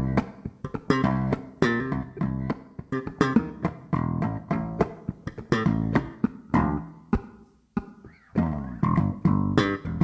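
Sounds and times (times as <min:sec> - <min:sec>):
funky electric bass guitar: 0:00.0 - 0:10.0.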